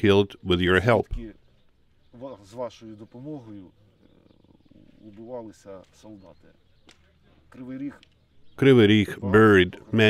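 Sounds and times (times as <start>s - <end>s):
man speaking: 8.6s - 10.0s.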